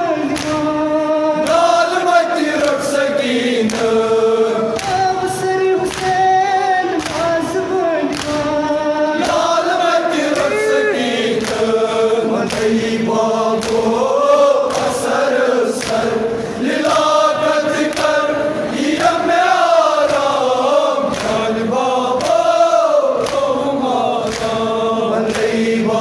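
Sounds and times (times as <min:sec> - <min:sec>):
men chanting in unison: 0:00.0 - 0:26.0
singer on a microphone: 0:00.0 - 0:26.0
hands slapping chests: 0:00.2 - 0:00.8, 0:01.4 - 0:03.0, 0:03.6 - 0:26.0.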